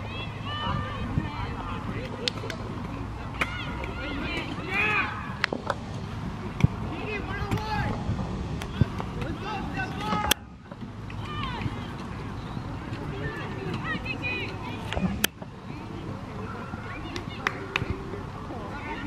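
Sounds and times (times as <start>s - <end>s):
players calling out: 0.0s - 5.5s, 6.4s - 19.0s.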